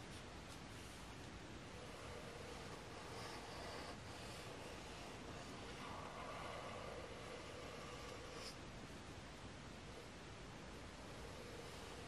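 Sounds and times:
marker scratching on paper: 1.8 - 8.6.

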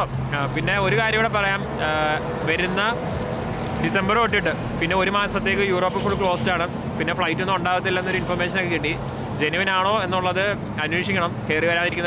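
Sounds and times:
man talking: 0.0 - 3.0, 3.8 - 12.0
street traffic hum: 0.0 - 12.0.

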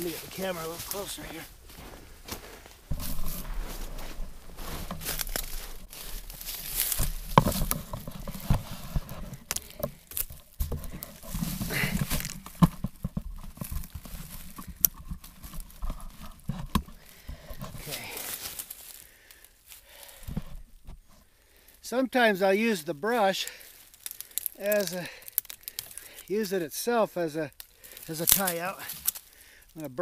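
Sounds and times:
dry branches brushing: 0.0 - 20.8, 23.1 - 26.9, 27.5 - 29.4
camera handling rustling: 2.9 - 17.9.

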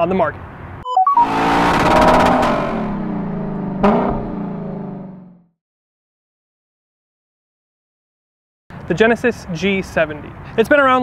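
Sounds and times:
droning stacked tones: 0.8 - 5.4.

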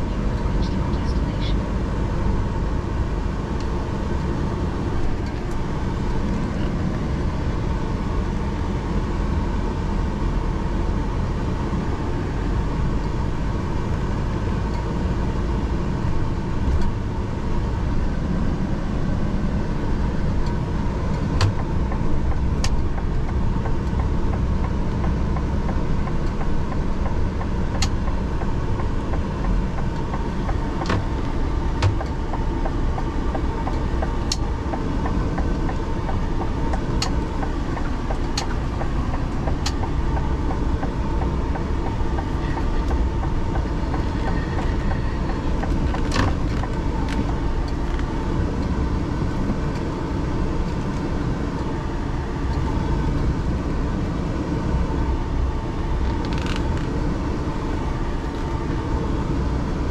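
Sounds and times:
lorry engine and road rumble: 0.0 - 59.9
sharp clicks and knocks: 21.4 - 48.7.

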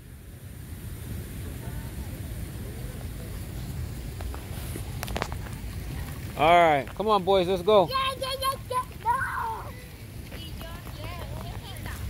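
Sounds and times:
wind rumble on microphone: 0.0 - 12.0
faint distant voices: 1.0 - 12.0.

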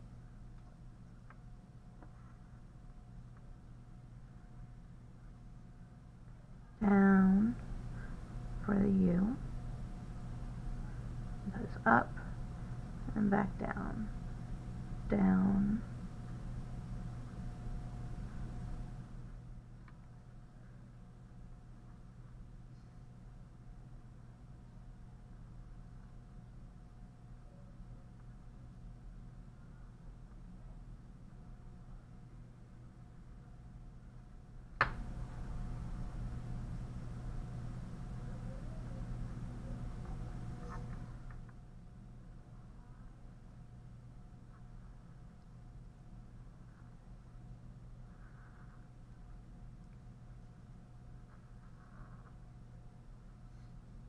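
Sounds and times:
low room hum: 0.0 - 54.0.

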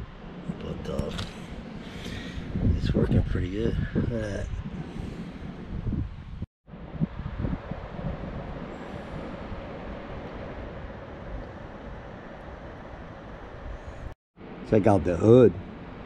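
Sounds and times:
wind on microphone: 0.0 - 14.2
outdoor background rumble: 0.0 - 16.0.

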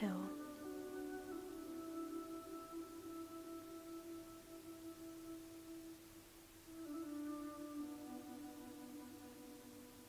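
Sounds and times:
soft ambient held chord: 0.0 - 10.0.

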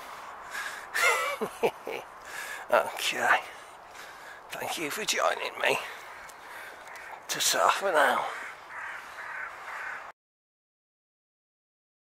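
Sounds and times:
bird calling: 3.9 - 10.1.

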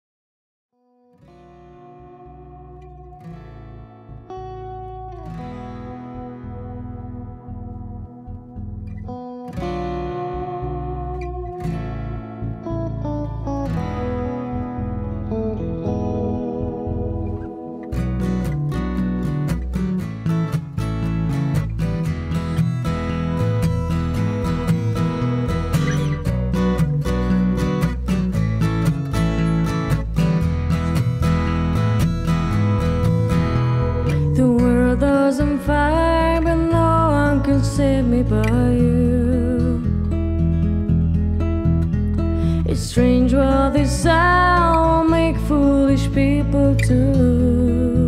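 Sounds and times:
picked guitar line: 0.8 - 48.0
rhythmic guitar strumming: 1.0 - 48.0
sustained bass guitar notes: 1.2 - 48.0.

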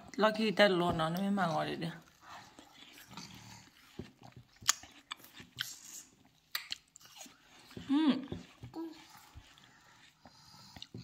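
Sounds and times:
children chewing watermelon: 0.0 - 11.0.

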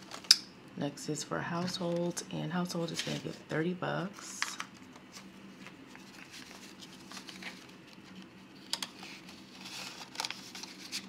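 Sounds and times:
banknotes and vinyl envelope handled: 1.6 - 11.0.

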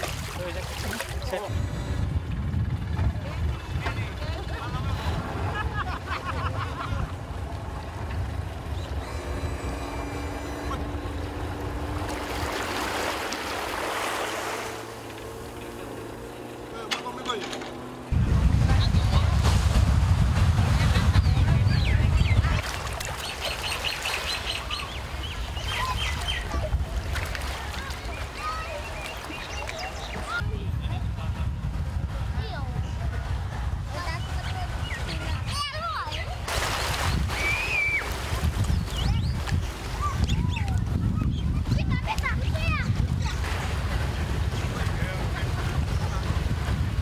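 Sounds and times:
wind buffeting microphone: 0.0 - 16.7, 17.9 - 47.0.

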